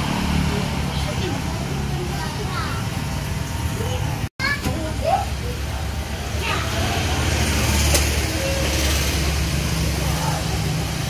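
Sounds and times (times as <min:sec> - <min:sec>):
motorcycles passing: 0:00.0 - 0:11.0
voices talking: 0:00.0 - 0:11.0.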